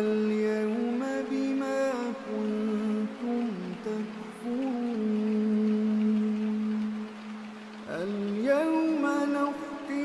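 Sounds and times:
man chanting recitation: 0:00.0 - 0:07.0, 0:07.8 - 0:10.0.

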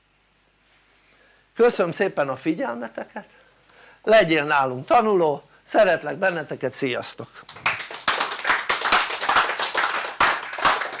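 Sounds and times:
audience applause: 0:07.4 - 0:11.0.

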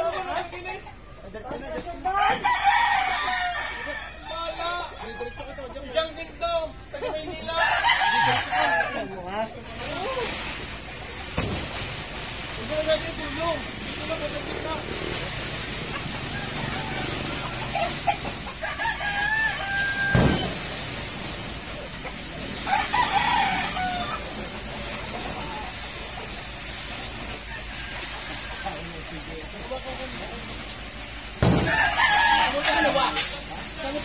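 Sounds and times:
rooster crowing: 0:02.2 - 0:05.7, 0:07.6 - 0:09.2, 0:16.2 - 0:20.7, 0:22.6 - 0:24.4, 0:27.5 - 0:28.9, 0:31.4 - 0:33.2
heavy thud: 0:31.4 - 0:31.7.

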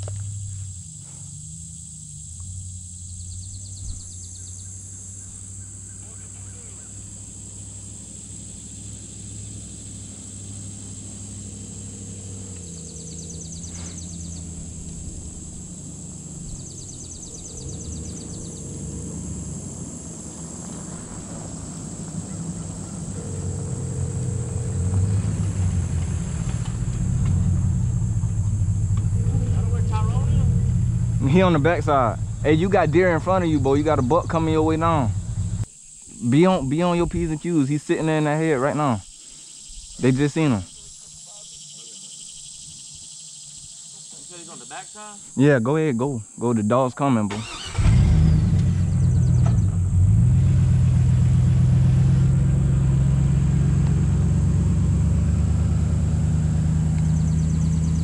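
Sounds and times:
truck engine and tyre rumble: 0:00.0 - 0:35.7, 0:47.3 - 0:58.0
insect buzz: 0:00.0 - 0:58.0.

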